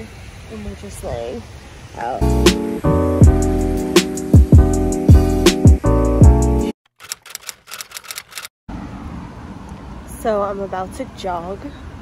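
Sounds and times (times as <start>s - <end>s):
outdoor background noise: 0.0s - 2.5s, 7.0s - 12.0s
typewriter keys clicking: 7.0s - 8.5s.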